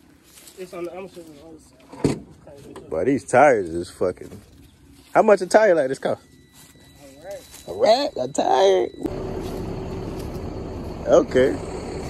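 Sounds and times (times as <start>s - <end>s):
truck engine idling: 8.4s - 12.0s.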